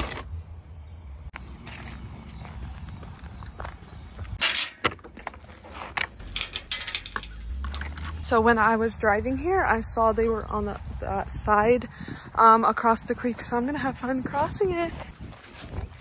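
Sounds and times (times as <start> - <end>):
handling noise: 4.1 - 8.4
metal hardware clinking: 4.4 - 5.4, 6.0 - 8.4.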